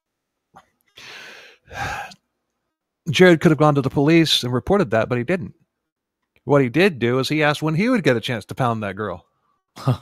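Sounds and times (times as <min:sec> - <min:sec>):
man sighing: 0:01.0 - 0:02.2.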